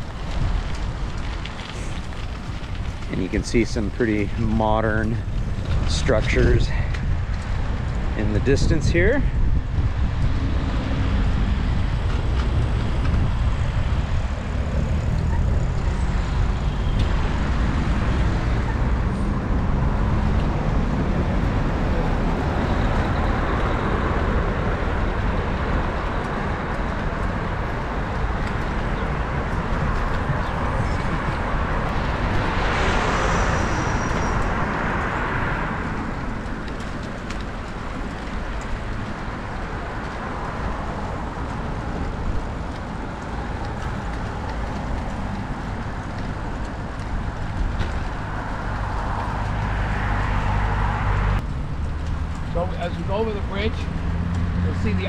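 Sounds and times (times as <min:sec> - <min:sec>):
road traffic passing: 0:00.0 - 0:55.0
wind rumble on microphone: 0:00.0 - 0:55.0
vehicle passing close: 0:07.6 - 0:55.0.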